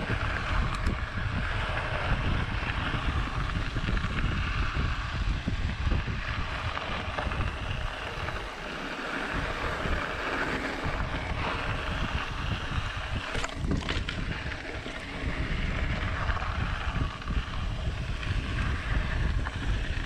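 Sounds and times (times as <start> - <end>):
bike rattling: 0.0 - 20.0
tyres rolling on dirt trail: 0.0 - 20.0
wind rushing over microphone: 0.0 - 20.0
bike clattering over rocks: 13.4 - 14.3.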